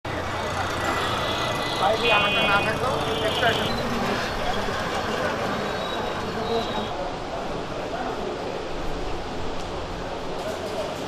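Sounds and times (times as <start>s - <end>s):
indistinct voices talking: 0.1s - 7.2s
traffic rush: 0.1s - 11.0s.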